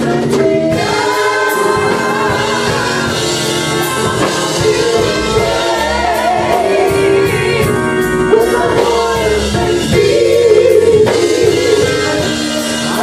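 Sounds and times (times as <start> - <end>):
instrumental backing with beat: 0.0 - 13.0
women singing in harmony: 0.0 - 13.0.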